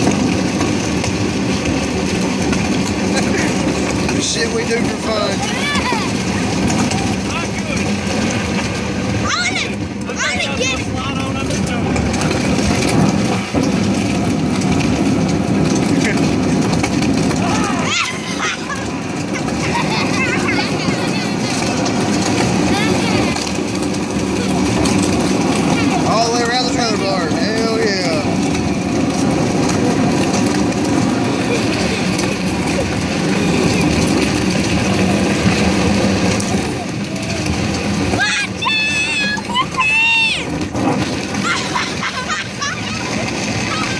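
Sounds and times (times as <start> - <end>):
plastic boat scraping over asphalt: 0.0 - 43.9.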